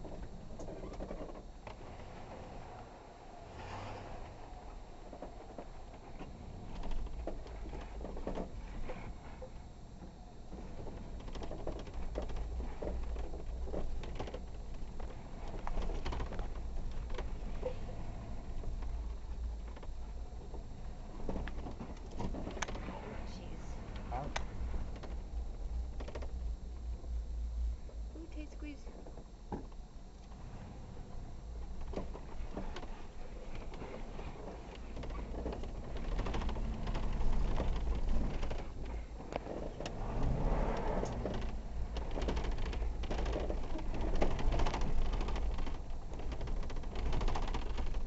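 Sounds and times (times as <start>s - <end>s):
off-road vehicle engine rumble: 0.0s - 48.0s
vehicle knocks and creaks: 5.0s - 23.1s, 31.6s - 48.0s.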